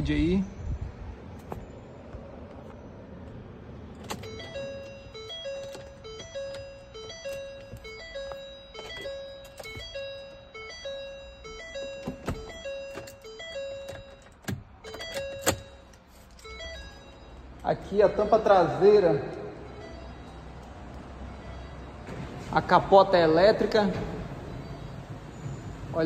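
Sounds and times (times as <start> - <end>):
electronic chime melody: 4.2 - 20.6, 21.2 - 22.0.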